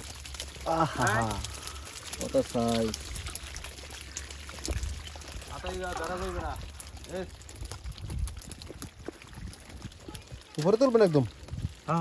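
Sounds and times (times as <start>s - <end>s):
small fish squirming in a basket: 0.0s - 12.0s.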